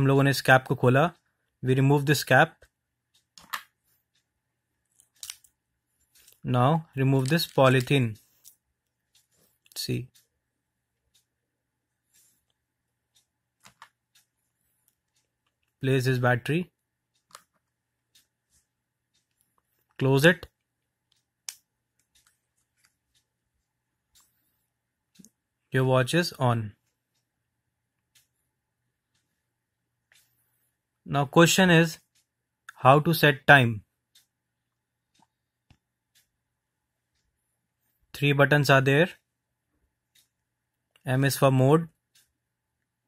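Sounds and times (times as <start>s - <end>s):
scratchy plastic clicks: 17.1s - 23.3s.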